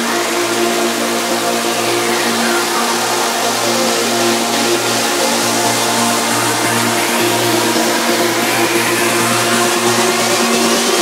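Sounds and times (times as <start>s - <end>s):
buzzing synth bass: 0.0s - 11.0s
fast pulsing synth pattern: 0.0s - 11.0s.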